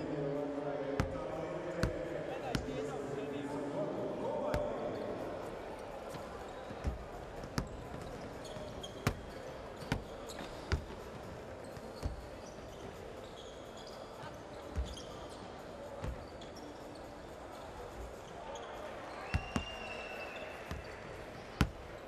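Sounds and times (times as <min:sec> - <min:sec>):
murmur of crowd voices: 0:00.0 - 0:22.0
basketballs bouncing on hardwood: 0:01.0 - 0:01.2, 0:01.8 - 0:02.7, 0:11.9 - 0:12.3.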